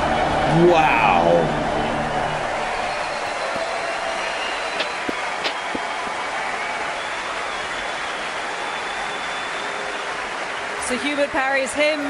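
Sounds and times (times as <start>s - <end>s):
audience applauding and cheering: 0.0s - 12.0s
whistles: 2.6s - 10.7s.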